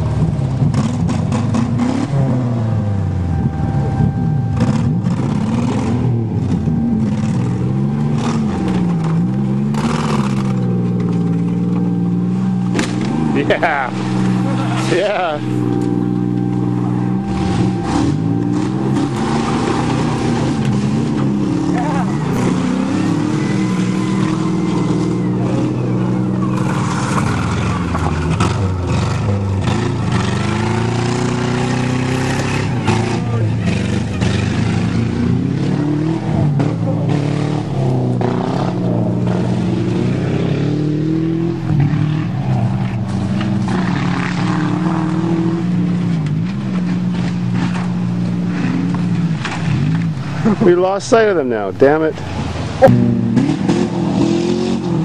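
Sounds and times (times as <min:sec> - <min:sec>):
car engines revving: 0:00.0 - 0:55.0.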